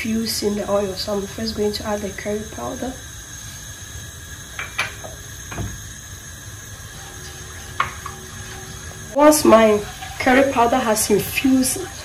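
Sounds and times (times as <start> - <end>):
kitchen background rumble: 0.0 - 12.0.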